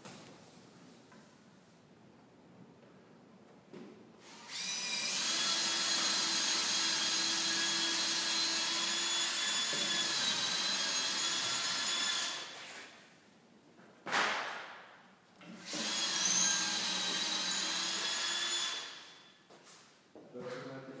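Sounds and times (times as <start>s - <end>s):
power tool motor whining: 4.2s - 12.5s.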